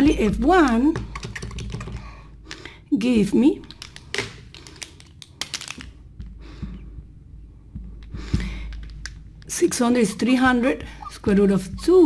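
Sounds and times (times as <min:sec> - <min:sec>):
marker pens clicking and tapping: 0:00.2 - 0:02.7, 0:03.6 - 0:06.0, 0:08.4 - 0:09.8.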